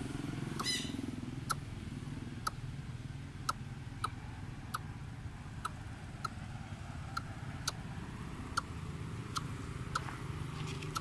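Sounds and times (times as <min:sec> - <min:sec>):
bird low pulsing call: 0:00.5 - 0:01.7
sharp tick: 0:03.4 - 0:04.9, 0:05.6 - 0:06.4, 0:07.1 - 0:07.8, 0:08.5 - 0:08.7, 0:10.8 - 0:11.0.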